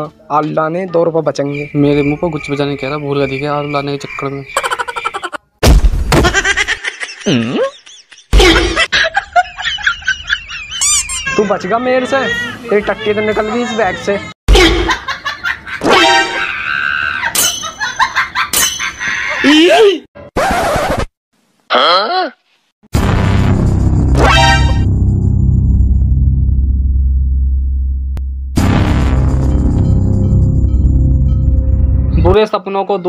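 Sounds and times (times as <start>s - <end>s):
loud booming hit: 22.9s - 31.3s.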